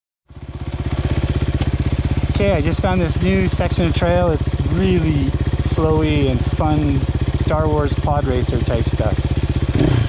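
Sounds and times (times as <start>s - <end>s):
motorcycle engine running: 0.3s - 10.0s.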